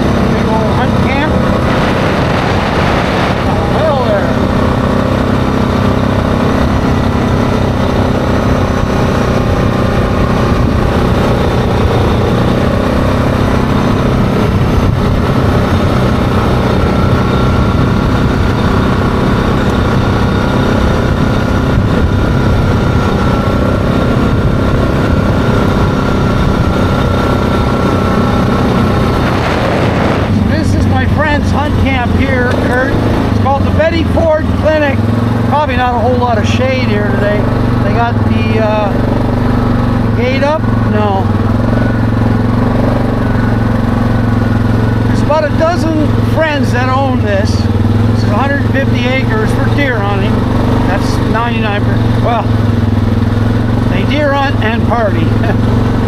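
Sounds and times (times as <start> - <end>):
atv engine running: 0.0 - 56.0.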